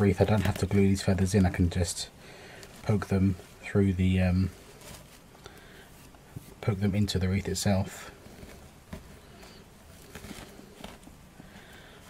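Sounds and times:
faint rustling and handling: 0.0 - 12.0.

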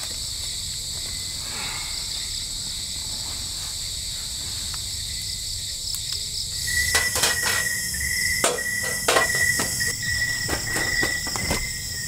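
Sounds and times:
lower insect trill: 0.0 - 12.0
night insects chorus: 0.0 - 12.0
firewood sticks breaking: 6.8 - 11.7.

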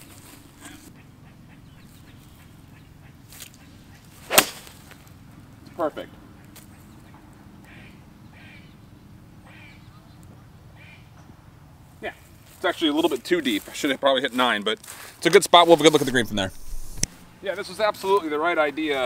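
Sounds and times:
faint outdoor background: 0.0 - 19.0
sharp crack: 4.2 - 5.0.

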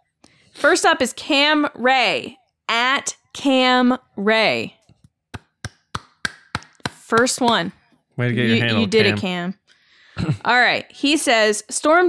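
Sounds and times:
person clapping hands: 5.4 - 7.7.

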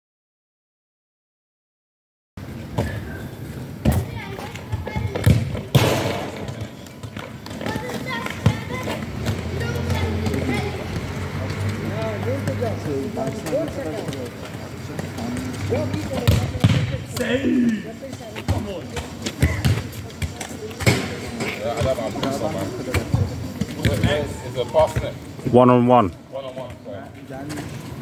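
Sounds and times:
football thudding on hard court: 4.8 - 7.2, 16.0 - 17.3, 21.8 - 24.2.

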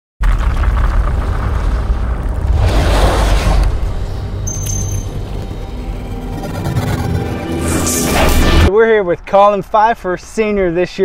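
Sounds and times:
whooshing swell: 2.4 - 8.7.

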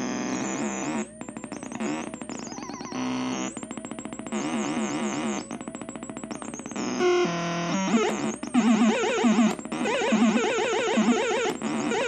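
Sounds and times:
electronic oscillator tones: 0.0 - 12.0.

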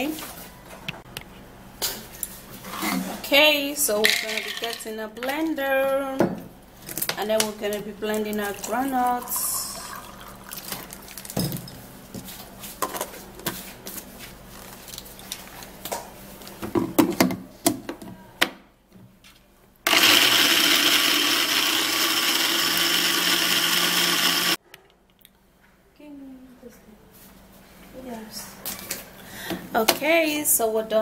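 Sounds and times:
water pouring into plastic jar: 9.0 - 11.3
blender motor grinding nuts: 19.9 - 24.6.

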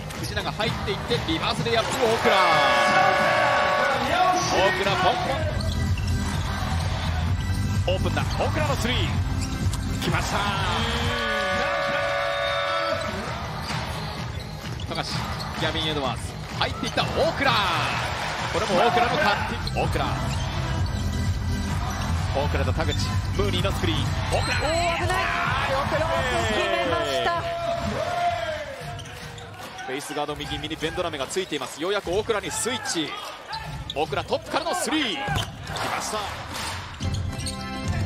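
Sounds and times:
music with steady pulse: 2.7 - 29.2
shoe squeaks: 5.1 - 6.2, 7.4 - 10.1, 12.0 - 15.7, 28.8 - 35.9, 36.9 - 38.0.

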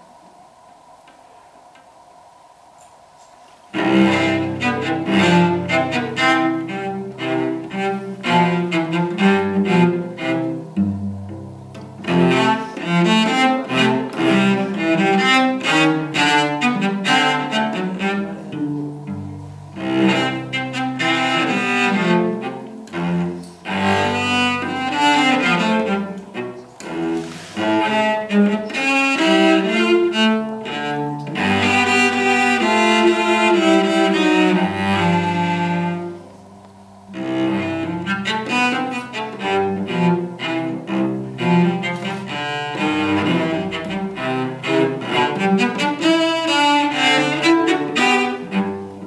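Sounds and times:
solo cello bowed: 3.7 - 49.0.

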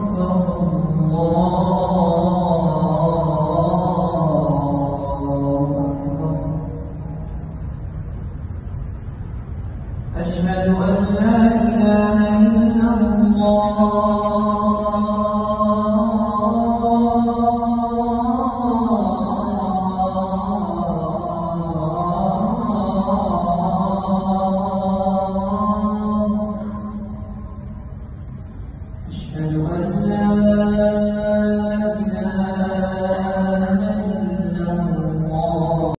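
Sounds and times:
man chanting call to prayer: 0.0 - 7.3, 10.1 - 27.8, 29.1 - 36.0.

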